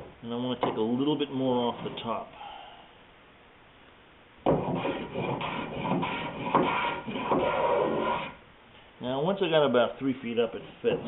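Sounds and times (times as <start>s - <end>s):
hand plane shaving wood: 4.6s - 8.4s.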